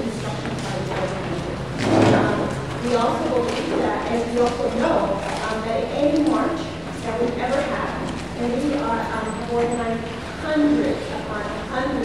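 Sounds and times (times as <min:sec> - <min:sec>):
woman speaking into microphones: 0:00.0 - 0:12.0.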